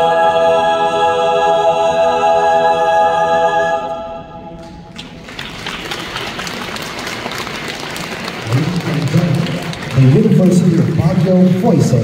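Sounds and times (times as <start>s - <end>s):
choir singing final chord: 0.0s - 5.0s
audience applause: 4.9s - 12.0s
man speaking over sound system: 8.4s - 12.0s.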